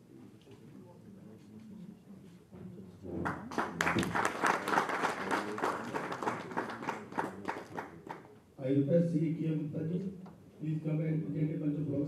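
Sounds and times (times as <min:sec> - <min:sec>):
hands clapping: 0:03.2 - 0:08.3.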